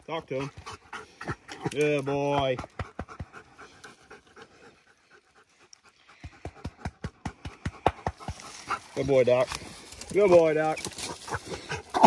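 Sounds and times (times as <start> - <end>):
dog panting: 0.2 - 9.5, 10.4 - 12.0.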